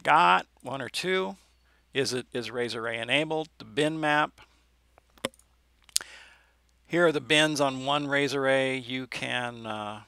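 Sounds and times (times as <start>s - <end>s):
man talking: 0.0s - 1.4s, 2.0s - 4.4s, 6.9s - 10.0s.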